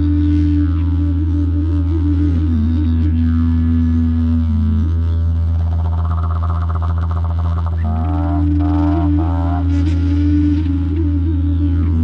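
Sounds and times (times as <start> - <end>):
low flute sustaining notes: 0.0 - 5.9, 7.8 - 12.0
didgeridoo drone: 0.0 - 12.0.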